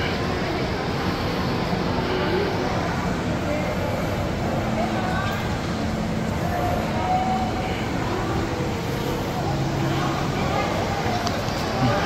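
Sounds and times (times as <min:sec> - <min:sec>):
indistinct voices of shoppers: 0:00.0 - 0:12.0.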